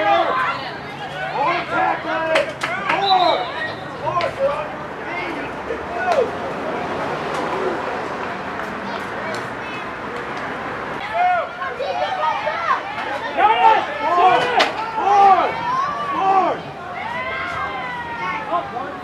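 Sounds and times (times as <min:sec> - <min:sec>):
people calling out: 0:00.0 - 0:06.4, 0:11.0 - 0:19.0
overlapping voices of spectators: 0:00.0 - 0:19.0.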